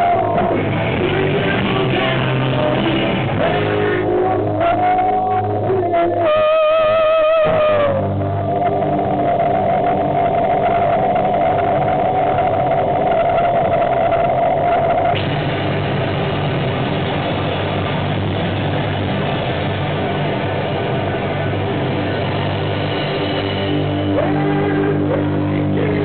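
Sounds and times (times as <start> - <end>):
distorted electric guitars: 0.0 - 26.0
live rock band playing: 0.0 - 26.0.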